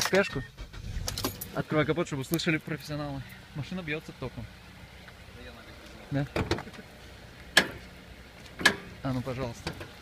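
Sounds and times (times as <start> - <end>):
hood latch metallic clunk: 7.5 - 7.8, 8.6 - 8.9.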